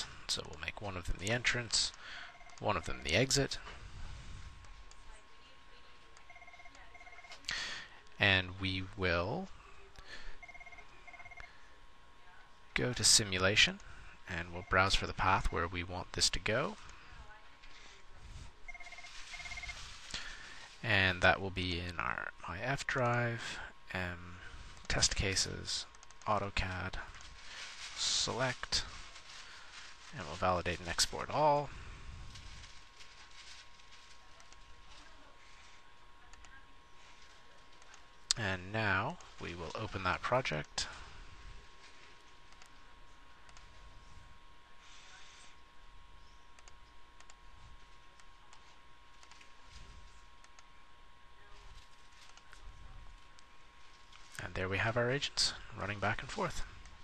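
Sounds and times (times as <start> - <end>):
low room hiss: 0.0 - 57.0
electronic telephone ringing: 2.2 - 3.0, 6.2 - 7.4, 10.4 - 11.6, 18.7 - 19.9.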